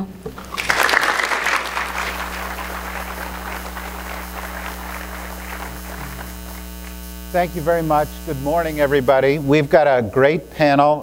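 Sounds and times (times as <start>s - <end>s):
mains hum: 0.0s - 11.0s
audience applauding: 0.4s - 7.0s.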